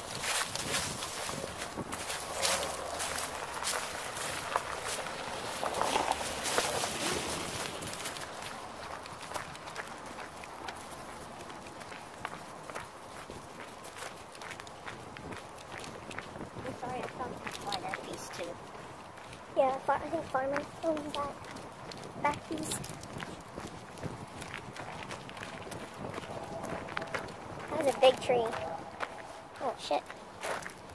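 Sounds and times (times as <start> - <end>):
footsteps crunching on gravel: 0.0 - 30.9.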